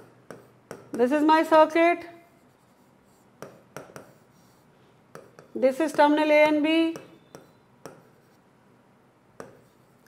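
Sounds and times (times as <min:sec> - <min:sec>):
stylus writing on glass screen: 0:00.0 - 0:08.5, 0:09.4 - 0:10.0.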